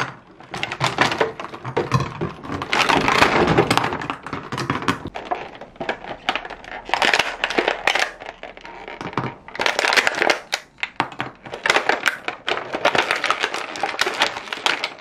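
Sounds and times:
plastic blister tray crackling: 0.0s - 15.0s.

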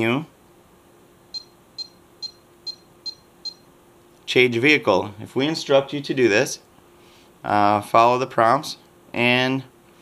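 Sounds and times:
short high-pitched beeps: 1.3s - 3.6s.

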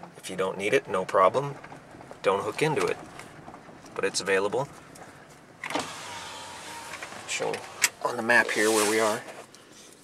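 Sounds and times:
power window motor whining: 5.6s - 9.2s.

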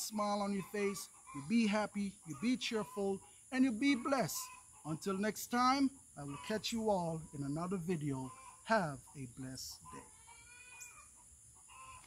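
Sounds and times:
high insect buzz: 10.0s - 12.0s.

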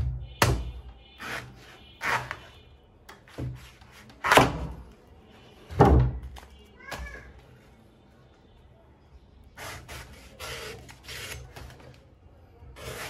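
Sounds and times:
blade scraping fruit skin: 1.2s - 2.5s, 12.8s - 13.0s.

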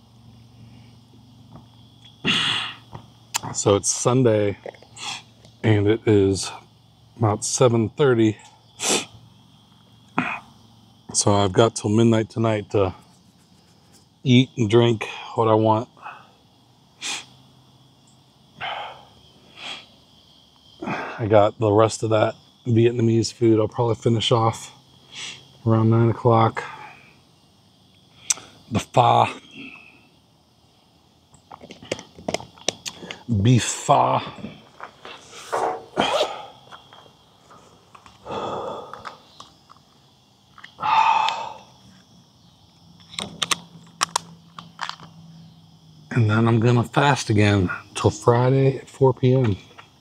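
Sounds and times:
crickets chirring: 0.0s - 50.0s
man breathing out: 2.2s - 2.8s, 38.2s - 39.3s, 40.8s - 41.7s.

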